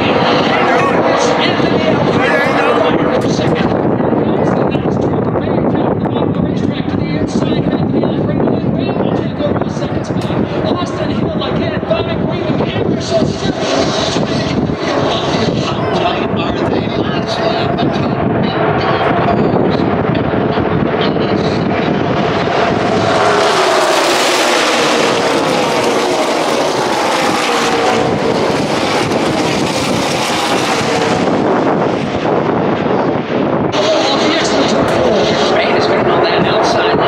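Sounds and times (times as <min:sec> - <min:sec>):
race cars passing at speed: 0:00.0 - 0:04.2, 0:10.0 - 0:37.0
distant engine noise: 0:00.0 - 0:04.3, 0:09.3 - 0:37.0
crowd voices: 0:00.0 - 0:05.0, 0:10.0 - 0:31.4, 0:33.7 - 0:37.0.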